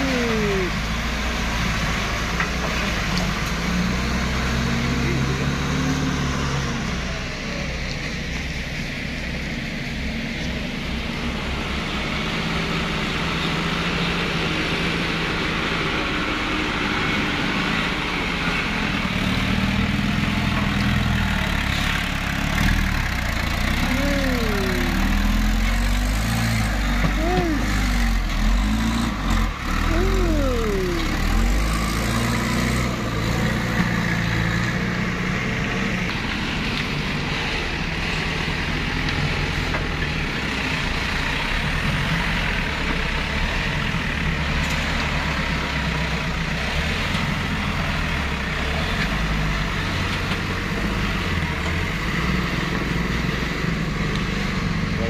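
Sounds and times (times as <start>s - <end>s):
diesel engine revving: 0.0s - 55.0s
heavy diesel engines running: 0.0s - 55.0s.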